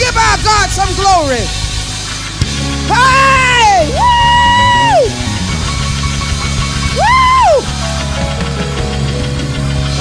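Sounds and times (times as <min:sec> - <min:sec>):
loud gospel music: 0:00.0 - 0:10.0
high whooping shouts: 0:02.9 - 0:05.2, 0:07.0 - 0:07.7.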